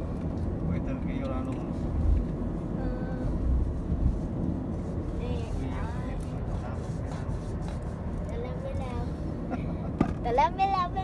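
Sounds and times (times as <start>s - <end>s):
road and engine rumble in car: 0.0s - 11.0s.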